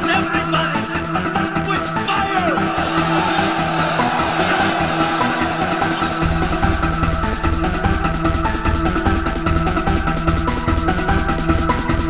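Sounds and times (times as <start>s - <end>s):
techno kick-drum beat: 0.0s - 12.0s.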